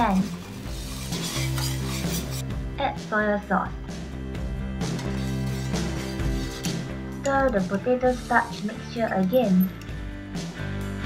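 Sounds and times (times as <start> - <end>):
spatula scraping pan: 0.0 - 2.5, 4.8 - 7.0.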